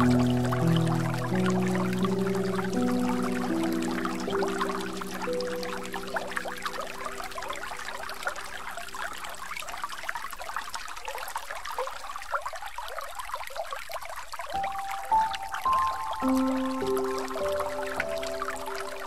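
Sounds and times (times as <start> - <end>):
held low music notes: 0.0 - 8.1
water trickling and splashing: 0.0 - 19.0.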